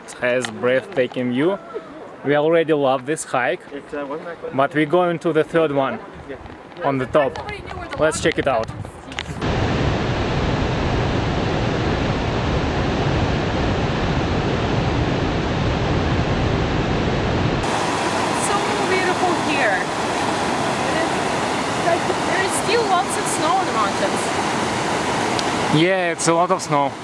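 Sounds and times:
waterfall rushing: 17.4 - 27.0
creek tumbling through rapids: 17.6 - 27.0.

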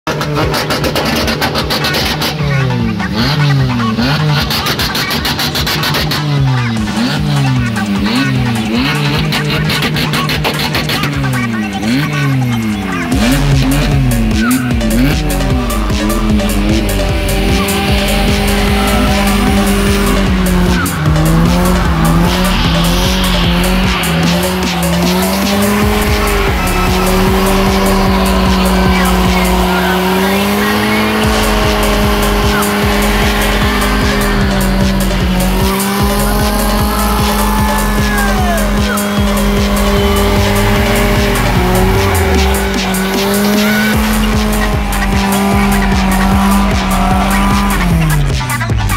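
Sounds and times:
car engine at high revs: 0.0 - 48.9
music with steady beat: 0.2 - 48.9
tyres squealing: 0.2 - 48.9.

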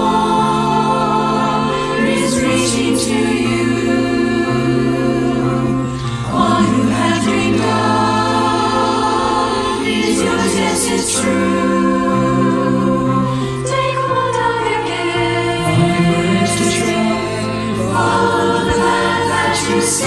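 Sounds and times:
choir singing in harmony: 0.0 - 20.0.

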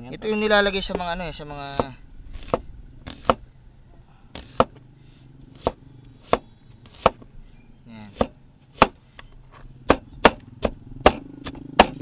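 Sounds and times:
cleaver chopping on wooden board: 1.7 - 3.4, 4.3 - 4.8, 5.5 - 7.3, 8.1 - 9.0, 9.8 - 12.0.

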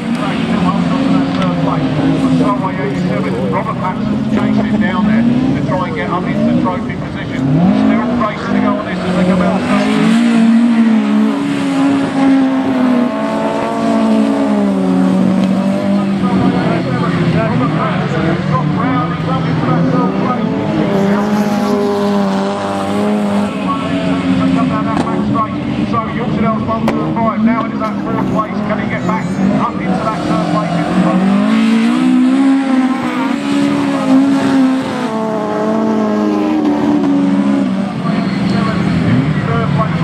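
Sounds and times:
race car engines revving: 0.0 - 40.0.

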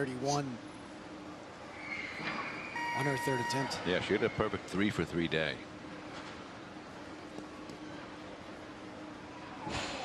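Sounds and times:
hall background noise: 0.0 - 10.0.

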